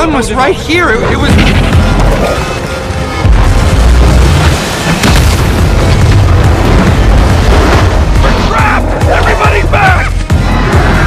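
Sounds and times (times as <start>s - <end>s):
film soundtrack music: 0.0s - 11.0s
deep booming rumble: 3.2s - 9.1s.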